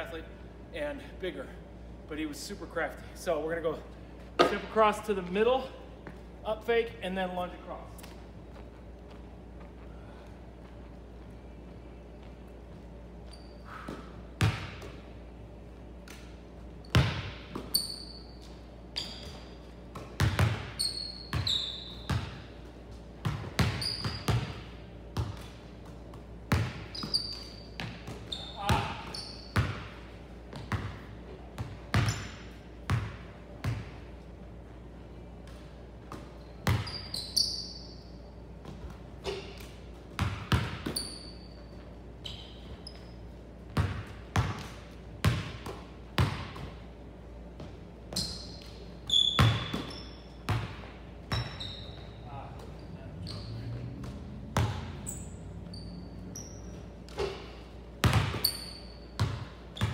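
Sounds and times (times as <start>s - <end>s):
sneakers squeaking on court: 8.0s - 15.1s, 16.8s - 34.0s, 35.4s - 59.9s
basketballs bouncing on hardwood floor: 19.0s - 22.5s, 23.2s - 31.0s, 35.5s - 36.9s, 40.1s - 41.0s, 43.7s - 46.8s, 49.4s - 52.7s, 53.8s - 55.0s, 56.7s - 59.9s.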